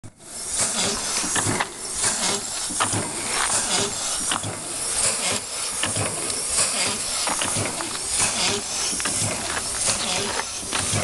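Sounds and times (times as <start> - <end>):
rhythmic engine exhaust hiss: 0.1 - 11.0
engine parts clacking: 0.4 - 11.0.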